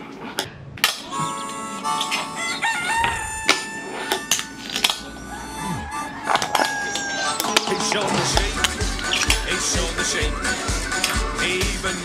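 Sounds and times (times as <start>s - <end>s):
cartoon theme music: 1.1s - 12.0s
rooster crowing: 2.1s - 9.2s.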